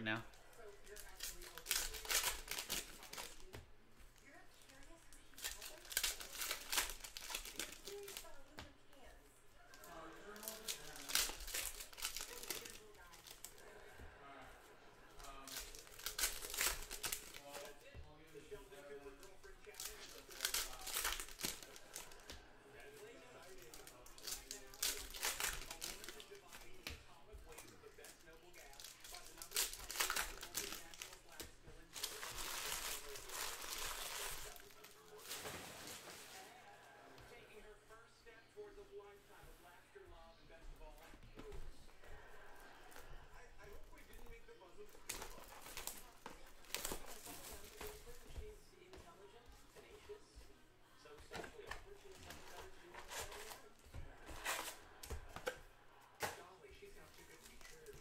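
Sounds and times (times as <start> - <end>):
foil wrappers crinkling: 0.3 - 3.6, 4.2 - 9.1, 9.7 - 13.8, 15.1 - 17.9, 18.5 - 36.6, 43.6 - 49.0, 51.2 - 55.6, 56.2 - 58.0.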